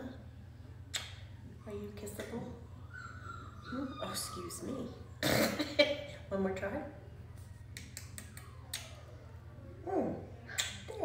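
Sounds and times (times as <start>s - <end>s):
kissing smacks: 0.9s - 1.2s, 7.7s - 9.0s, 10.5s - 11.0s.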